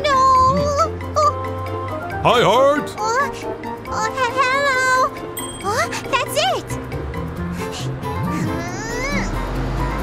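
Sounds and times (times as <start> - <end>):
light background music: 0.0 - 10.0
high chime: 5.4 - 6.0.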